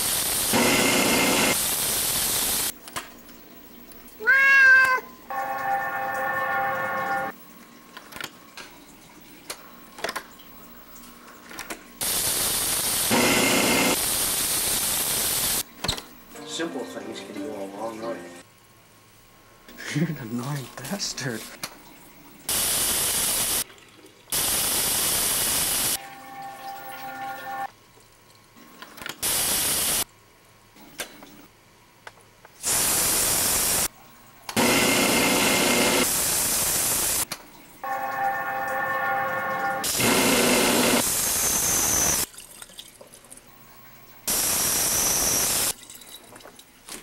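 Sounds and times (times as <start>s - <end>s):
faucet water running: 0.0s - 15.8s, 19.9s - 30.1s, 32.6s - 47.0s
steady pitched hum: 37.8s - 41.0s.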